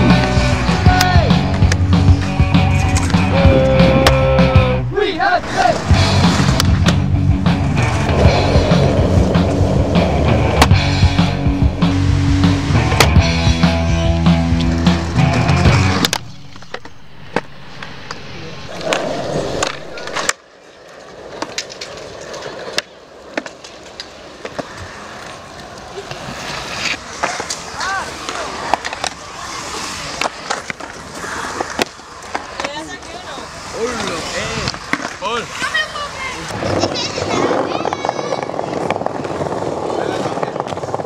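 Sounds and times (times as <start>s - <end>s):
skateboard wheels rolling rumble: 0.0s - 41.0s
skateboard clacks and knocks: 36.6s - 41.0s.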